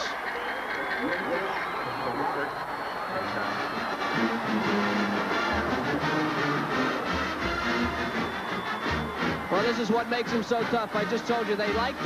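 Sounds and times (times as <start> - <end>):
band playing: 0.0 - 12.0
crowd noise: 0.0 - 12.0.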